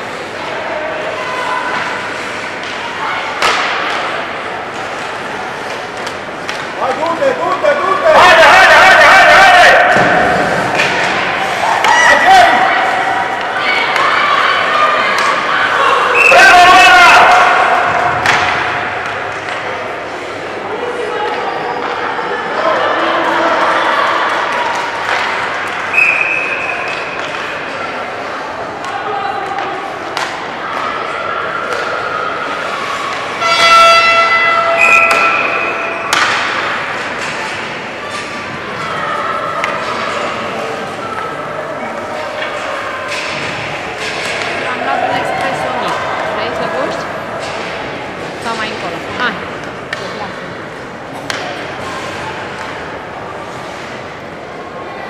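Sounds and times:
hockey sticks and puck knocking: 3.4 - 7.3, 35.0 - 38.4, 51.1 - 52.8
people shouting: 7.8 - 18.3.

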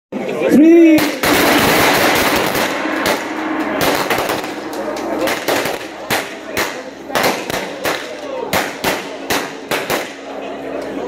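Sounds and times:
gong ringing: 1.2 - 7.2.

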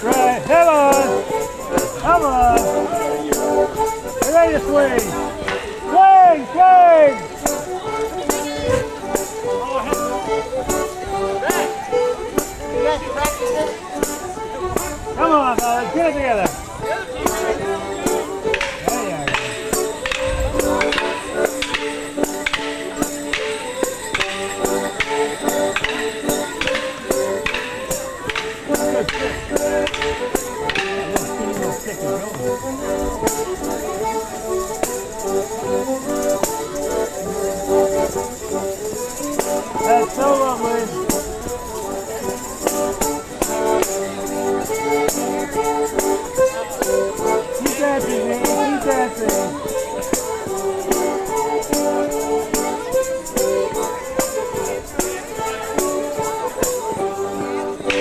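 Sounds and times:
live folk tune: 0.0 - 58.0.

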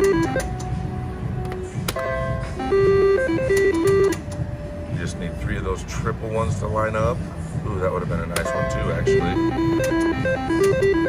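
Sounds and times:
slot machine electronic jingle: 0.0 - 0.6, 2.0 - 4.2, 8.4 - 11.0.

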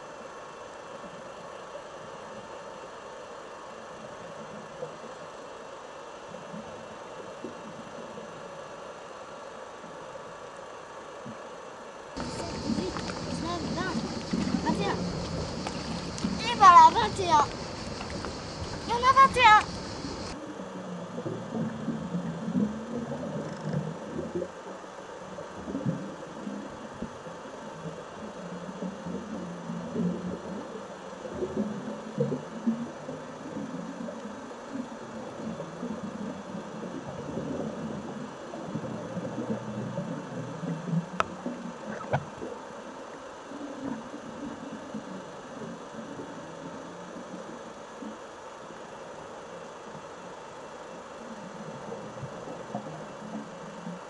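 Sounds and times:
underwater regulator bubbles: 12.2 - 24.7, 25.3 - 42.6.

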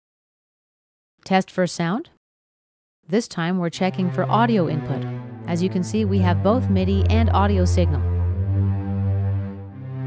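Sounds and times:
synthesizer string chords: 3.8 - 10.0.

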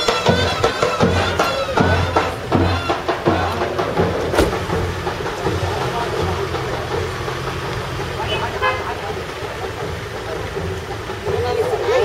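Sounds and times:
car engine idling: 0.0 - 12.0
crowd talking: 0.0 - 12.0.

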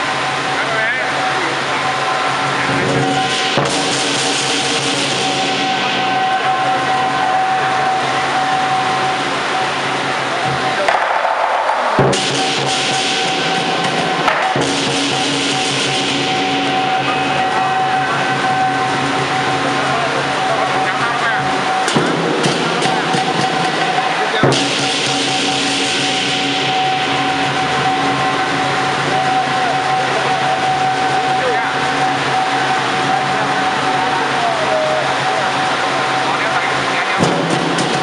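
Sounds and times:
large drum beating: 0.0 - 38.0.

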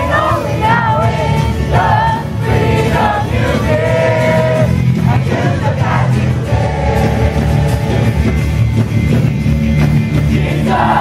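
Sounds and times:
many voices singing: 0.0 - 8.9, 9.8 - 11.0
band playing worship music: 0.0 - 11.0.

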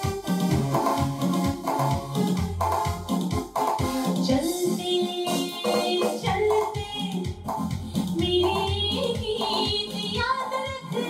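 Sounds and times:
repeating bass line: 0.0 - 10.3.

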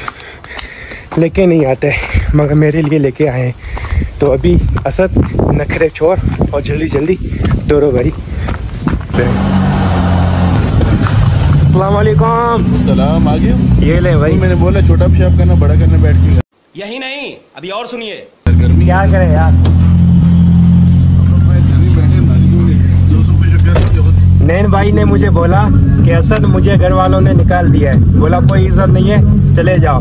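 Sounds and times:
wind on microphone: 3.8 - 9.2, 10.4 - 11.7.

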